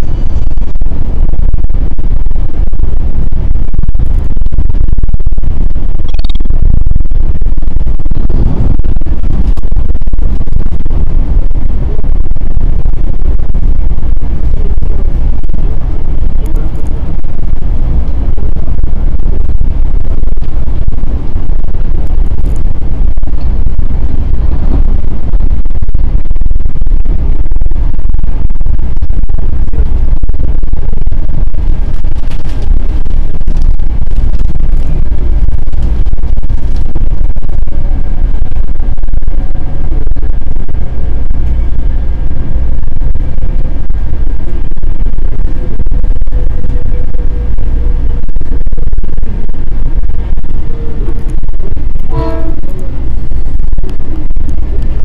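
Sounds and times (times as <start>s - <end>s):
faint steady tone: 0.0s - 55.0s
train wheels rumbling on rail: 0.0s - 55.0s.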